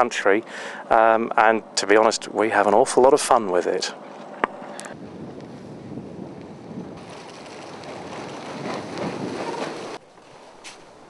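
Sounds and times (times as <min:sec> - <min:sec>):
wind rushing over microphone: 0:04.8 - 0:10.0.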